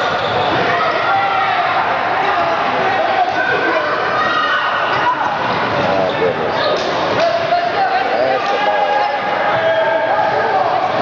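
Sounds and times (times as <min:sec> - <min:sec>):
spectators' voices and calls: 0:00.0 - 0:11.0.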